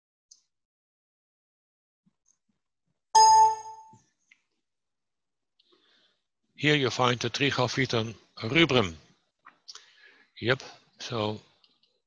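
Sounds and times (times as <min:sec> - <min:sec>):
computer alert chime: 0:03.2 - 0:03.9.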